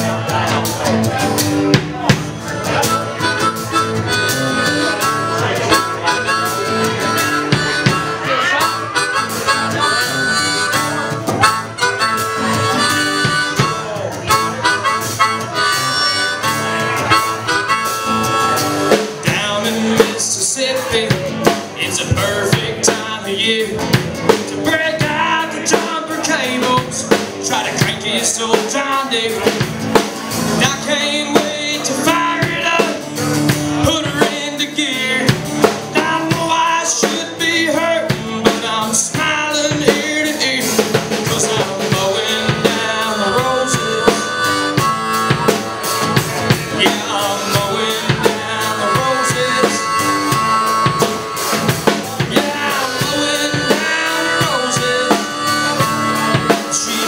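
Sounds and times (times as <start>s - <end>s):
drum kit: 0.0s - 57.0s
strummed acoustic guitar: 0.0s - 57.0s
harmonica solo: 2.5s - 19.2s, 41.2s - 57.0s.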